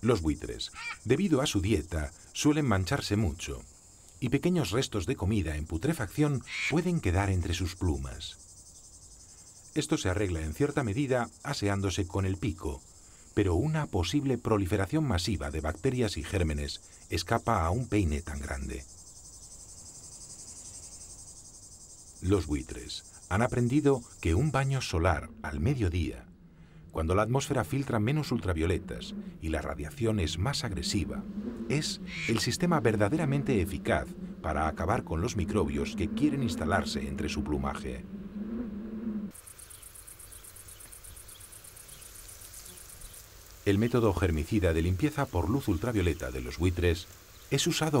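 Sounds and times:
insects chirring: 0.0 - 48.0
low steady hum: 23.4 - 39.3.

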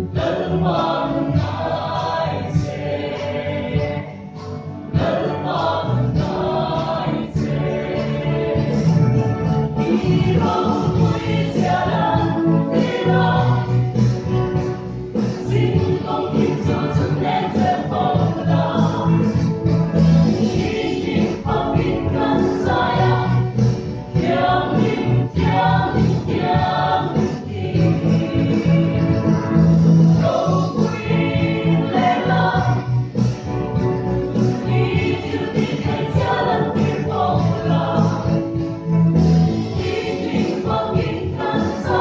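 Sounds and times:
mixed choir singing a hymn: 0.0 - 4.3, 4.9 - 42.0.

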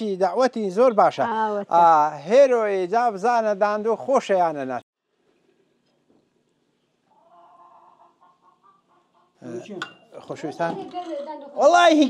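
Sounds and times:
faint animal calls: 7.1 - 9.4.

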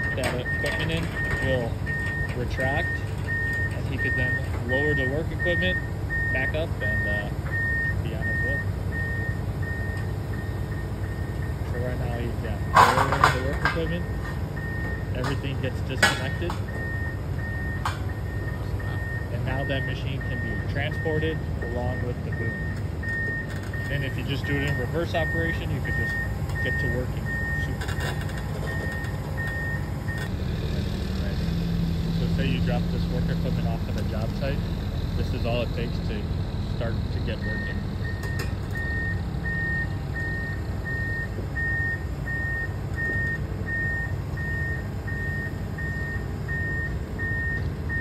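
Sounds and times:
high-pitched warning alarm beeps: 0.0 - 30.3, 32.3 - 48.0
excavator diesel engine rumbling: 0.0 - 48.0.

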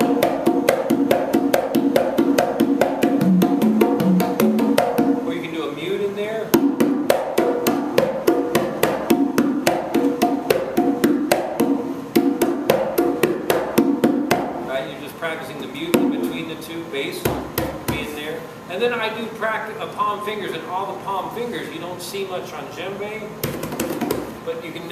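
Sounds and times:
conga drum slaps and tones: 0.0 - 5.6, 6.4 - 14.7, 15.8 - 16.4, 17.2 - 18.1, 23.4 - 24.4.

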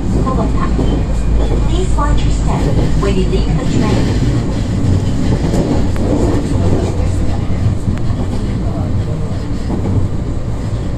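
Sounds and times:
train running rumble: 0.0 - 10.9.

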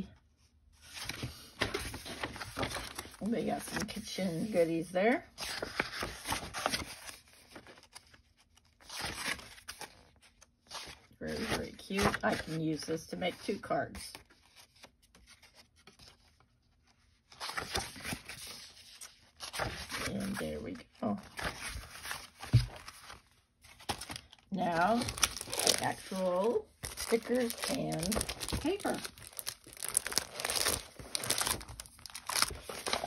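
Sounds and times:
paper pages rustling: 0.8 - 4.7, 5.4 - 33.0.

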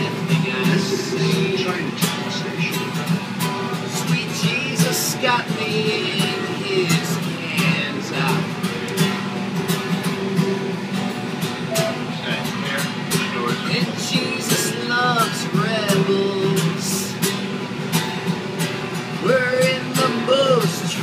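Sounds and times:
acoustic guitar strumming: 0.0 - 21.0
harmonica melody: 11.7 - 12.3.

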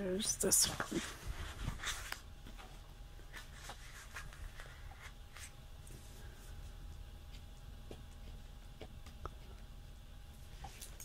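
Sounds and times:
paper pages rustling: 0.6 - 6.0.

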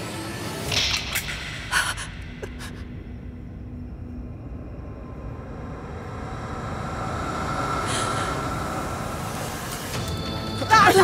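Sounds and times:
low rumbling drone: 0.0 - 10.4.

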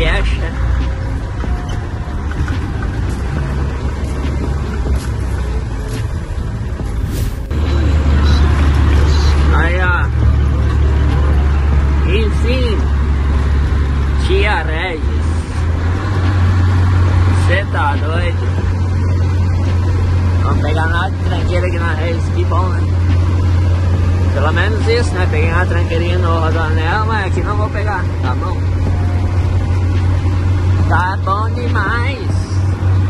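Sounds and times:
truck diesel engine droning: 0.0 - 33.0.

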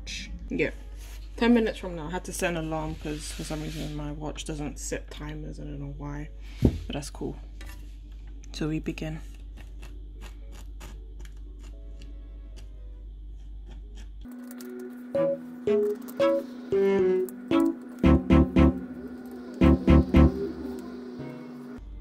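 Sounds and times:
music with heavy low beats: 15.2 - 19.0, 19.6 - 20.6.

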